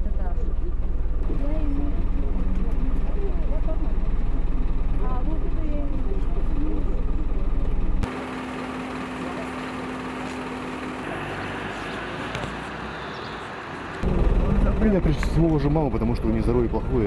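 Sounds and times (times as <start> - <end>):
passengers' voices: 0.0 - 7.8
bus engine idling: 0.0 - 17.0.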